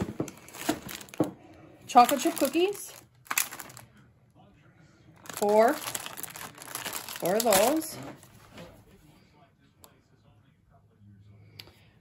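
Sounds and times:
plastic wrapping crinkling: 0.0s - 1.3s, 1.9s - 3.9s, 5.2s - 8.6s
light knocks of packages: 0.0s - 1.4s.

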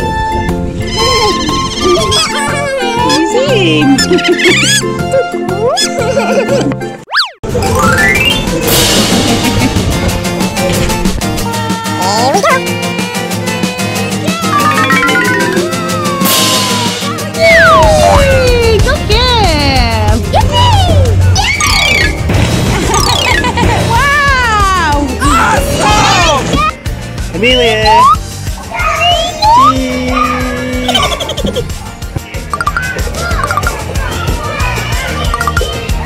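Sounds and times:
bouncy children's music: 0.0s - 36.0s
falling glide sound effect: 14.5s - 16.6s.

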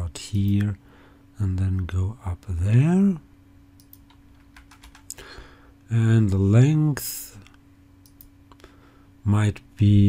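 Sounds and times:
low electrical hum: 0.0s - 10.0s
keyboard clicks: 3.8s - 5.2s.

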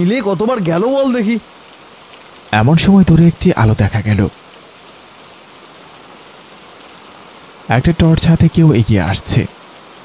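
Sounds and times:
steady rainfall: 0.0s - 10.0s.

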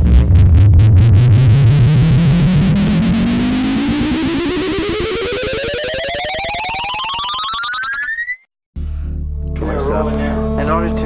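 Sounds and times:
distorted electronic rising tone: 0.0s - 8.4s.

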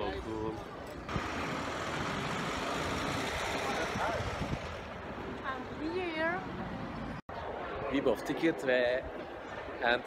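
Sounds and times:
cars passing on road: 0.0s - 7.2s.

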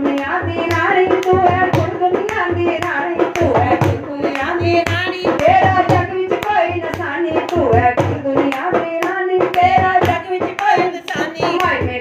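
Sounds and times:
hand claps: 0.0s - 12.0s
woman singing devotional song: 0.0s - 12.0s
low drum beat: 0.3s - 12.0s.

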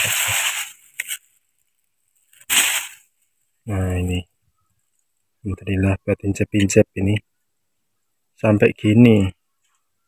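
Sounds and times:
plastic bag crinkling: 0.0s - 3.1s.

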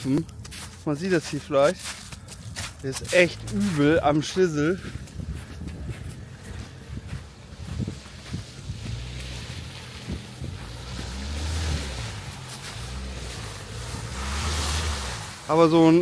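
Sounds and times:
pickup truck engine rumbling: 2.1s - 16.0s.

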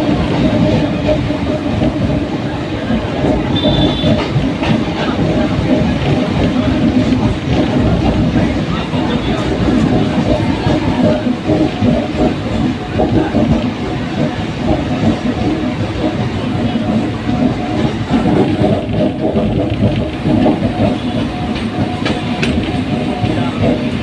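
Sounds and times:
train wheels rumbling on track: 0.0s - 24.0s.

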